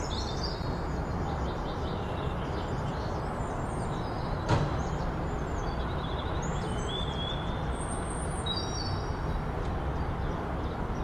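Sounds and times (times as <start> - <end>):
birds chirping: 0.0 - 11.0
brief knock: 4.5 - 4.8.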